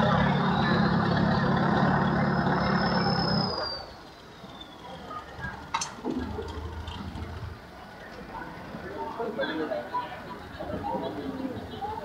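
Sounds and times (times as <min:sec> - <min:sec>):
low engine hum: 0:00.0 - 0:04.6
high engine whine: 0:00.0 - 0:07.7.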